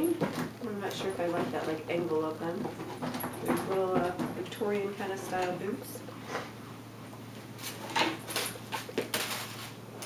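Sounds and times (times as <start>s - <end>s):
low electrical hum: 0.0s - 10.0s
plastic wrapping crinkling: 7.6s - 10.0s.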